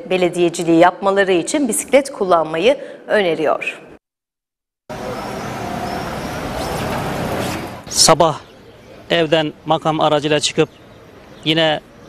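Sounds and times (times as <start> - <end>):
motor vehicle rumbling: 4.9 - 12.0.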